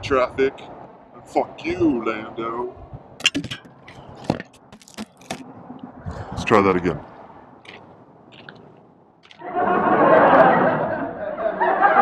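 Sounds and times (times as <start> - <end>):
sharp knocks and clatters: 3.2 - 5.5.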